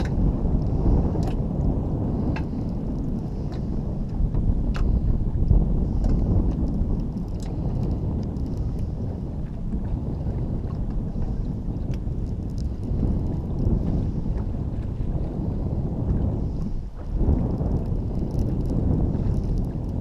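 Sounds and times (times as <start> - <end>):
wind buffeting microphone: 0.0 - 20.0
faint ticks: 11.9 - 13.8, 17.5 - 20.0.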